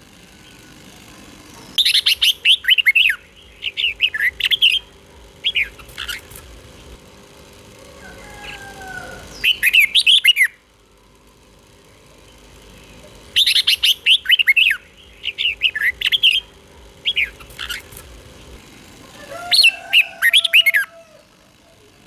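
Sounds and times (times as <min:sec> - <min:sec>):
bird warbling whistles: 0:13.4 - 0:16.5.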